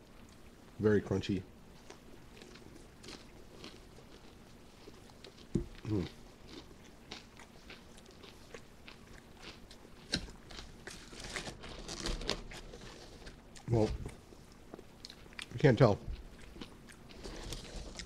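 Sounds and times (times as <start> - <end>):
chewing crunchy chicken: 1.7 - 18.0
person murmuring mm: 5.8 - 6.2.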